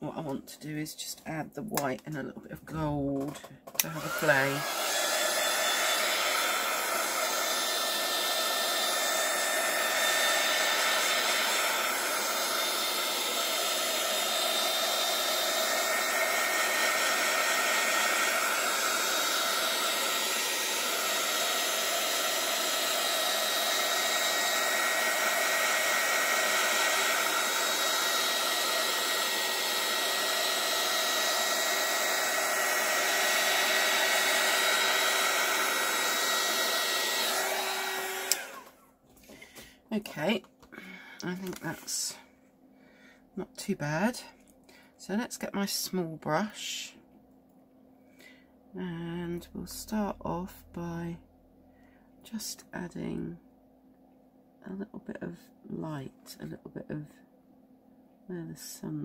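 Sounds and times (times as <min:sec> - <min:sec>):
heat gun blowing air: 0:03.7 - 0:38.8.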